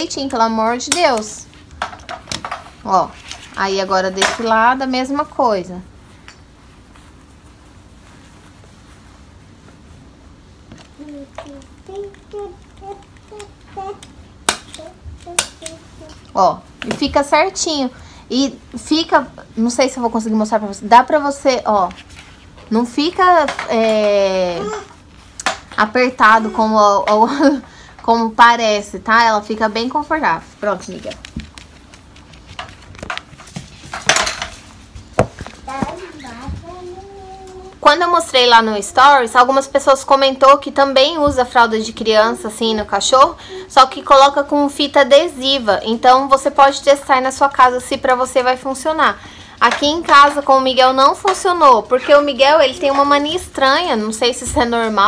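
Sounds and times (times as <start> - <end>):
faint steady hum: 0.0 - 55.0.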